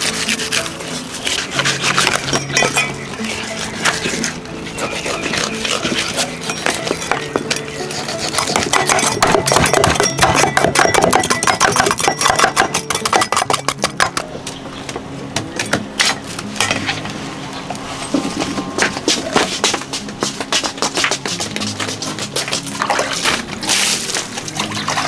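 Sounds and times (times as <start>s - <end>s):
background music: 0.0s - 25.0s
cleavers chopping on wooden block: 4.8s - 14.3s.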